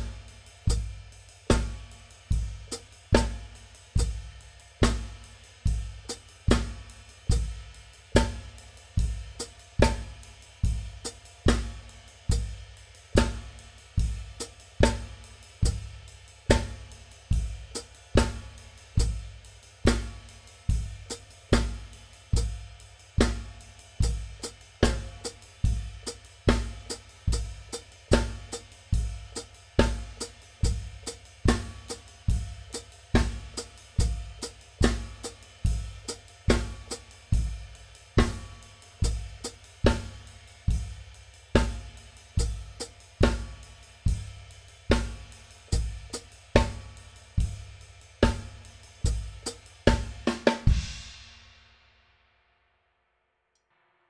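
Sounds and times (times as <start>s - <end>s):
hi-hat pedal melody: 0.0s - 50.9s
bass drum thump: 49.1s - 51.1s.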